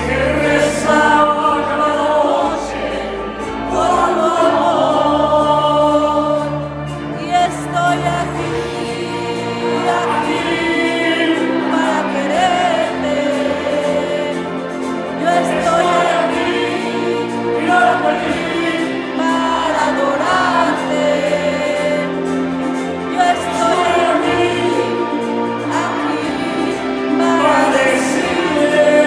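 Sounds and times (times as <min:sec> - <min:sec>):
live band holding loud chord: 0:00.0 - 0:29.0
voices singing: 0:00.0 - 0:29.0.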